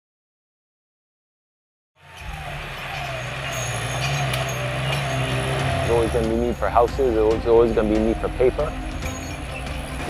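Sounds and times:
large engine humming: 2.0s - 10.0s.

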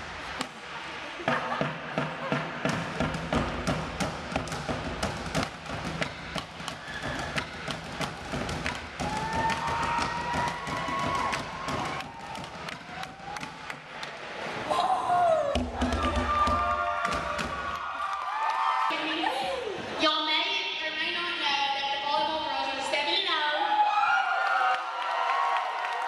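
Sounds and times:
drumsticks hitting plastic buckets: 1.6s - 14.0s, 15.4s - 17.8s.

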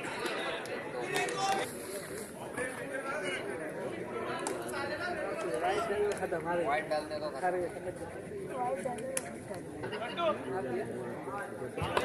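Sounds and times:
voices chattering: 0.0s - 12.0s.

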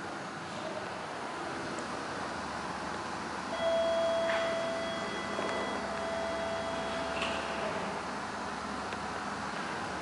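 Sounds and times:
elevator steady high tone: 0.0s - 10.0s
low room hum: 0.0s - 10.0s.

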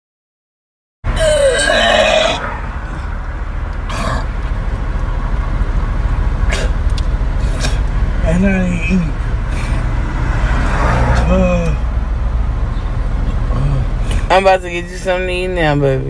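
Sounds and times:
steady low rumble: 1.1s - 16.0s.

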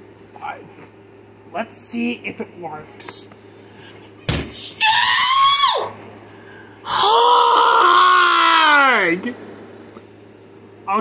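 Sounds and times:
person screaming in frustration: 4.7s - 5.9s, 6.9s - 9.2s.

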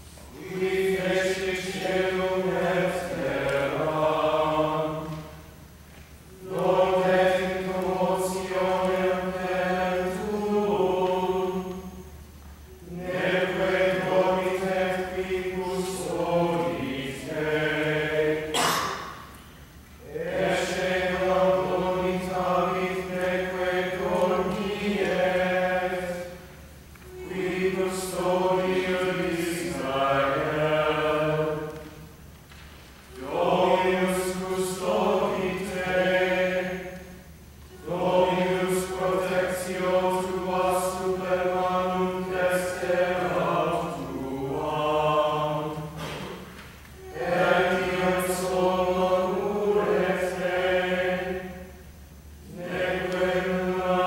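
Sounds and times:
group chanting in unison: 0.3s - 5.5s, 6.3s - 12.1s, 12.7s - 19.3s, 20.0s - 32.0s, 33.2s - 51.8s, 52.5s - 54.0s.

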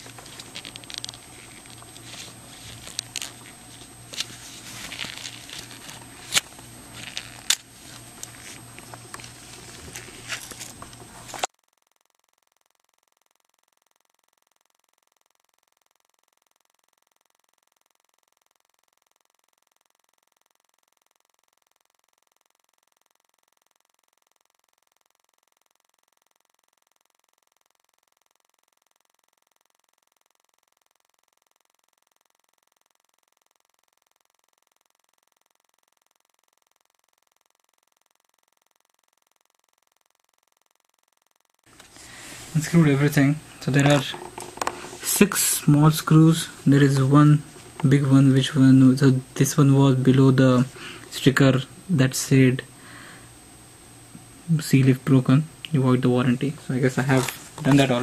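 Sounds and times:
gloved hands handling laptop: 0.0s - 11.5s, 41.7s - 45.3s, 57.1s - 58.0s
steady low hum: 0.0s - 11.5s, 41.7s - 58.0s.

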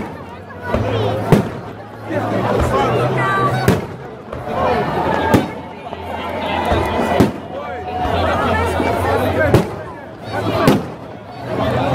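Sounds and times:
crowd chatter: 0.0s - 11.9s.

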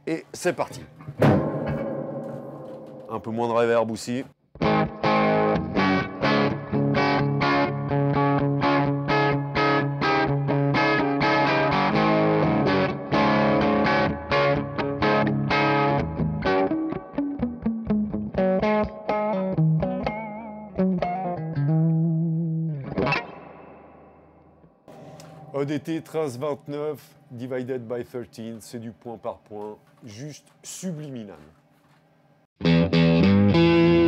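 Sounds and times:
overdriven electric guitar: 4.6s - 25.6s, 32.6s - 34.0s.

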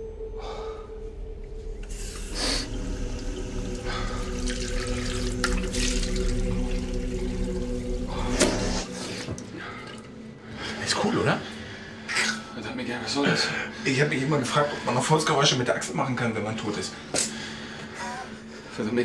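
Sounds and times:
steady low hum: 0.0s - 14.6s
tap water running into basin: 1.8s - 10.1s
water splashing on face: 2.1s - 9.0s.

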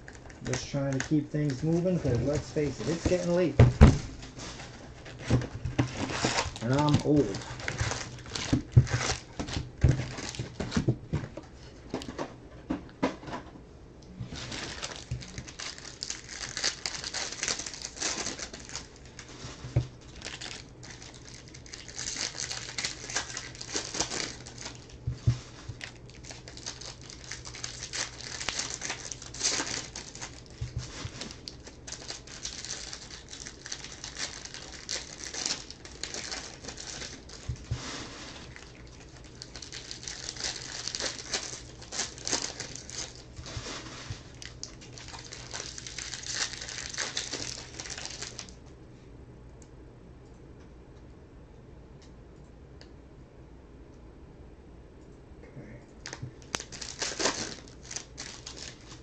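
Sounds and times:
foil wrappers crinkling and tearing: 0.0s - 12.2s, 14.3s - 48.6s, 56.0s - 59.0s.

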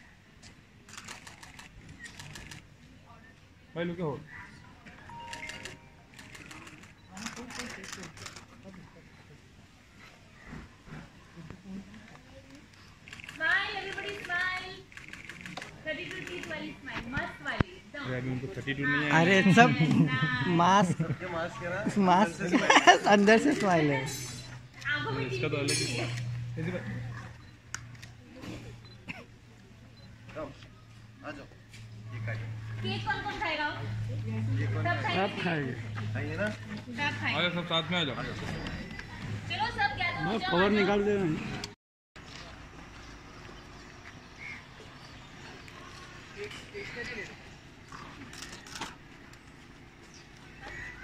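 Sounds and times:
camera shutters clicking: 0.9s - 2.6s, 5.2s - 8.6s, 13.1s - 16.7s, 48.2s - 49.0s.

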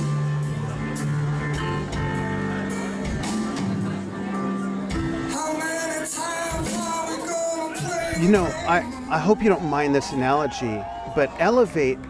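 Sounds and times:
rock band playing: 0.0s - 11.2s.

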